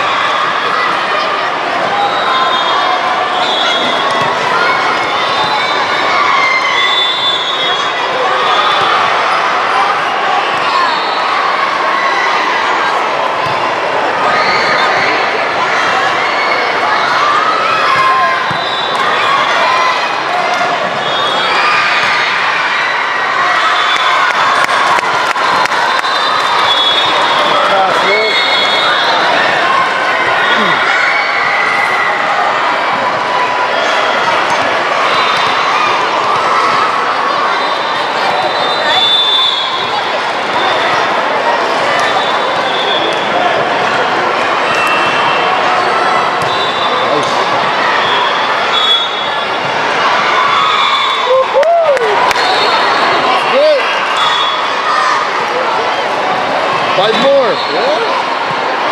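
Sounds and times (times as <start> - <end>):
many overlapping voices: 0.0 - 58.9.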